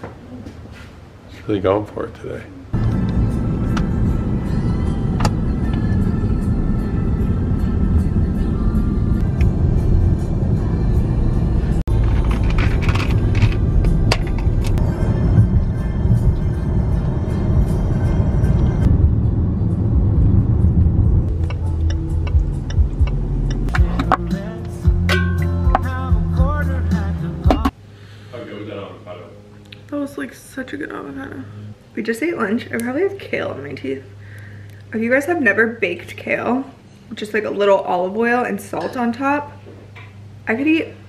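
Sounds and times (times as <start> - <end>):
car road and engine rumble: 2.6 - 27.9
background music: 2.8 - 19.0, 19.6 - 27.8.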